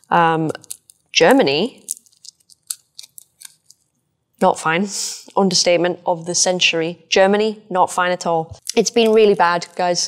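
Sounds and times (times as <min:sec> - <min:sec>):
plant leaves clicking and crackling: 0:00.4 - 0:03.8.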